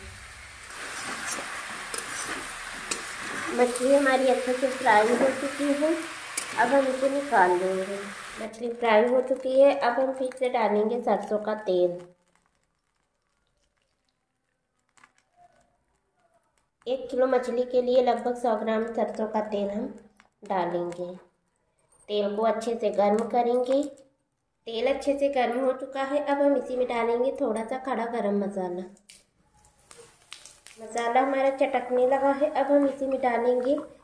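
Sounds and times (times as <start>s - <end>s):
fish frying in oil: 0.0s - 10.4s, 11.1s - 15.6s, 30.3s - 34.0s
oil pouring into steel pan: 12.2s - 15.2s.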